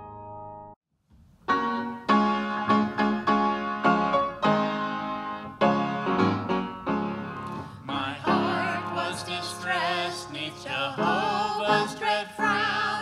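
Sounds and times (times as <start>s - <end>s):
upright piano chords: 0.0s - 0.8s, 1.4s - 13.0s.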